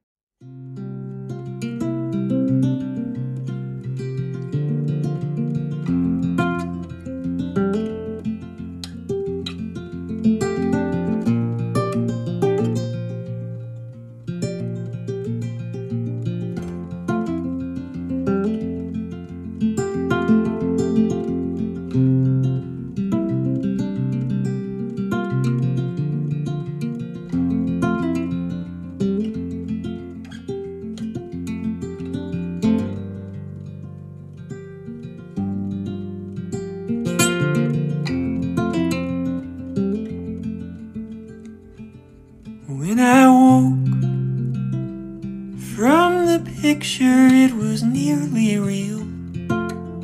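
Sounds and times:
acoustic guitar instrumental music: 0.4 - 50.0.

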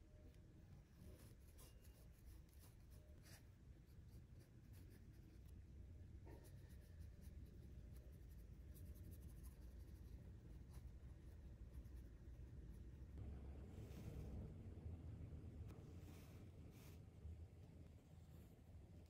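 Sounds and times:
brush strokes on paper: 0.8 - 5.5, 15.7 - 18.8.

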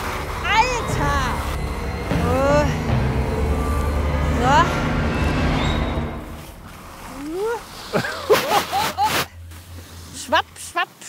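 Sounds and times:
skis scraping over snow: 6.3 - 11.0.

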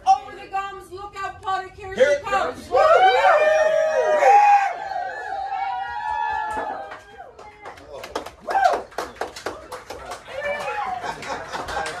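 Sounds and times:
overlapping voices: 4.8 - 12.0.

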